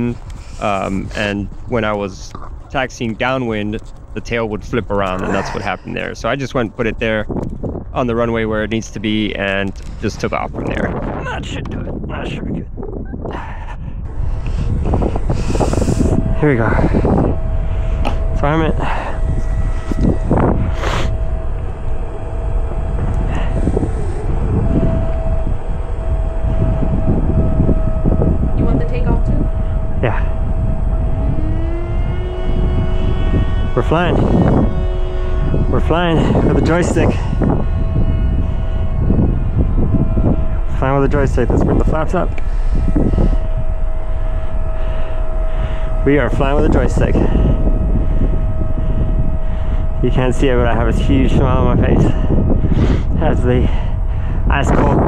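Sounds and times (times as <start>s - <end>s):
thin whine: 0.0s - 55.0s
wind rumbling on microphone: 0.0s - 55.0s.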